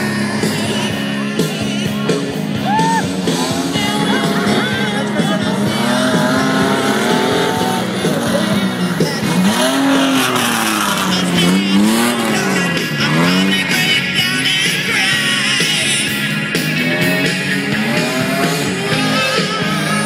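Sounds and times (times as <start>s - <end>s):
truck engine revving hard: 0.0s - 20.0s.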